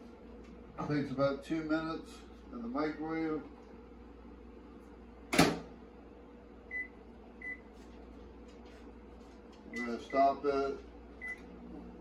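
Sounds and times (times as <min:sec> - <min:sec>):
steady low hum: 0:00.0 - 0:12.0
microwave door latch clunk: 0:05.3 - 0:05.7.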